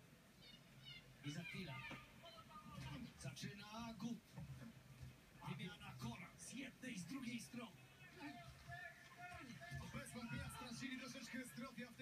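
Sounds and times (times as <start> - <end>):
tv sports broadcast voices: 0.0 - 12.0.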